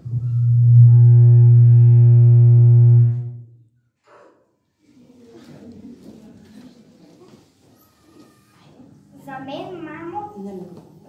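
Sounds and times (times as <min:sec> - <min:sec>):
buzzy low drone from speakers: 0:00.0 - 0:03.6.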